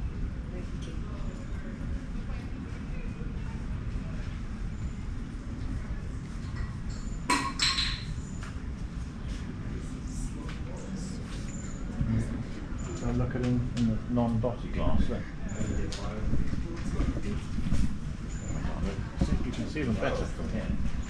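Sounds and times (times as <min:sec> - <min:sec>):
steady low rumble: 0:08.2 - 0:21.0.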